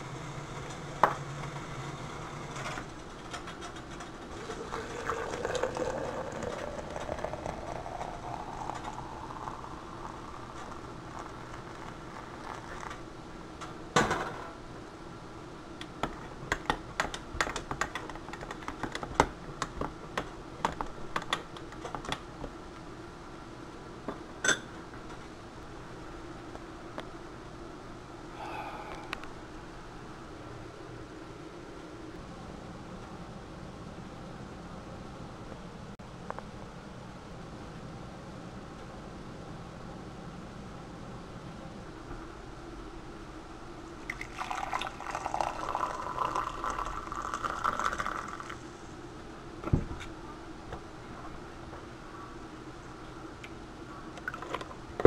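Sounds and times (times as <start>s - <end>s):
coffee pouring into a mug: 4.3s - 13.0s, 44.0s - 48.7s.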